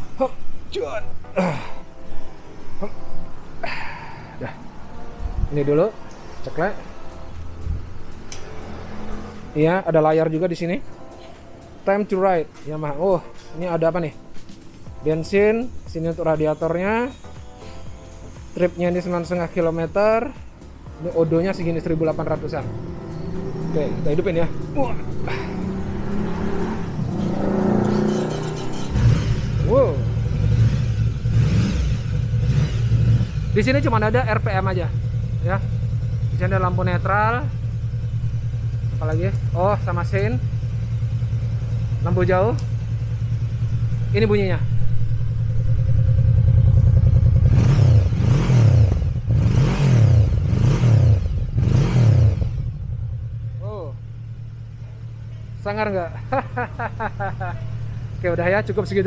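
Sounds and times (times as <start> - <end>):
motorcycle engine starting: 21.5 - 53.6.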